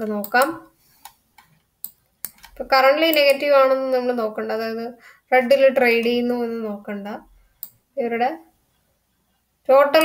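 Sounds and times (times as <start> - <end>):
computer mouse clicks: 0.1 - 3.4, 7.6 - 7.8.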